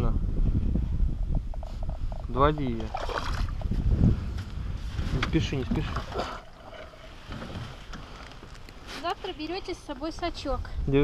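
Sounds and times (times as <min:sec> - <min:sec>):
water splashing and sloshing: 0:01.8 - 0:04.0, 0:04.8 - 0:10.0.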